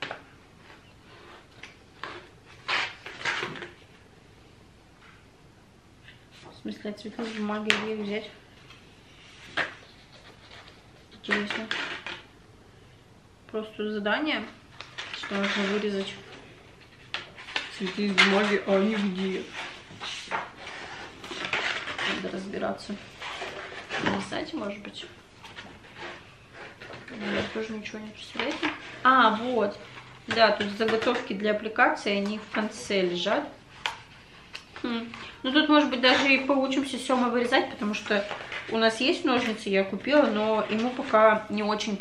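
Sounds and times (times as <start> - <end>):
paper pages rustling: 8.6 - 12.1
paper rustling and sliding: 14.8 - 31.3.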